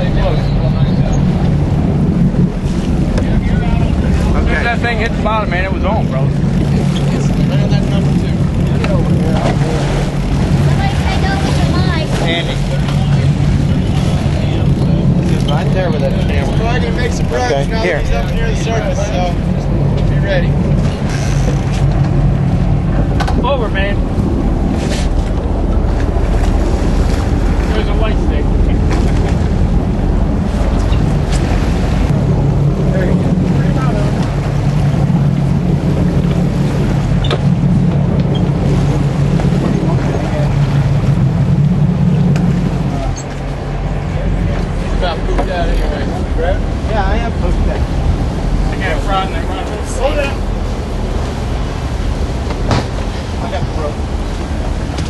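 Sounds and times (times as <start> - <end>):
boat engine humming: 0.0 - 55.0
water rushing along hull: 0.0 - 55.0.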